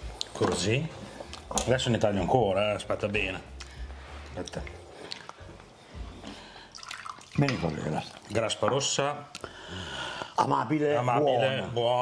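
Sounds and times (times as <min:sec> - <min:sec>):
person eating with mouth sounds: 0:04.9 - 0:05.4.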